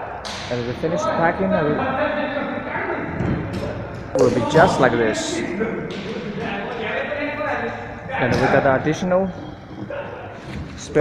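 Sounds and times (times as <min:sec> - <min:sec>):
man talking: 0:00.5 - 0:03.2, 0:04.1 - 0:11.0.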